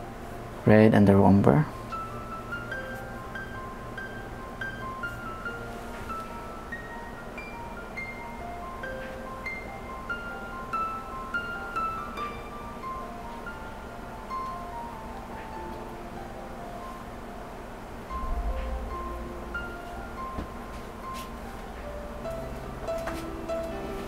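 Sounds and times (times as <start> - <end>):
gentle bell-like melody: 1.8 - 17.3, 18.0 - 24.0.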